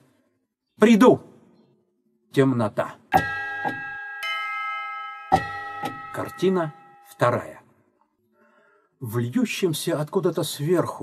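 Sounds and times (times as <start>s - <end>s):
higher chime tones: 3.2s - 7.4s
bell-like chimes ringing: 3.2s - 7.6s.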